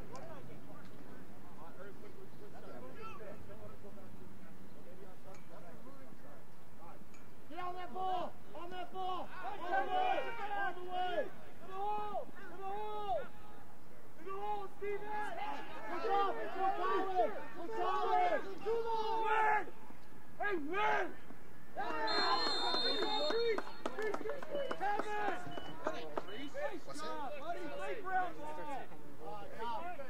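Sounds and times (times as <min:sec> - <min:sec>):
faint outdoor background noise: 0:00.0 - 0:30.0
people shouting calls: 0:07.6 - 0:13.6, 0:14.2 - 0:19.8, 0:20.4 - 0:21.2, 0:21.8 - 0:28.4.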